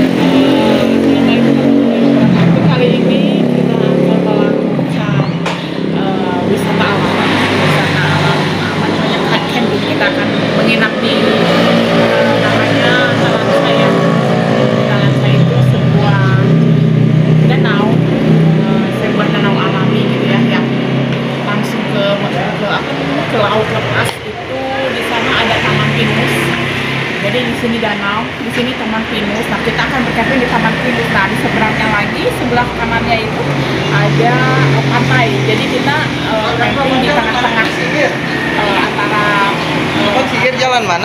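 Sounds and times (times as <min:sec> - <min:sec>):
woman speaking: 0:00.0 - 0:40.6
vehicle engine running: 0:00.0 - 0:41.0.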